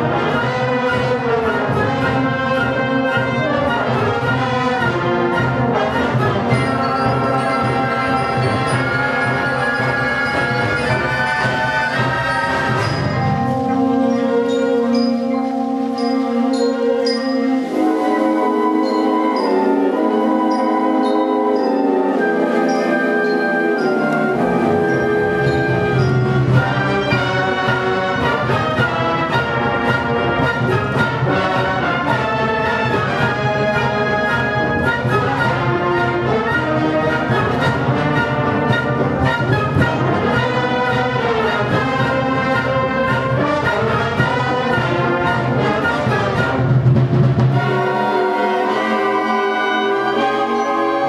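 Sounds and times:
concert band playing: 0.0 - 51.0.

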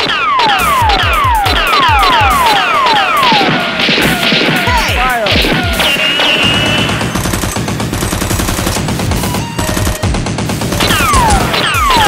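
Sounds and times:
rapid automatic gunfire: 0.0 - 12.0
background music: 0.6 - 12.0.

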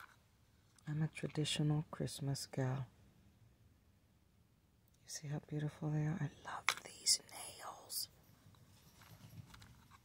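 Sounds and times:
woman whispering: 5.0 - 8.2.

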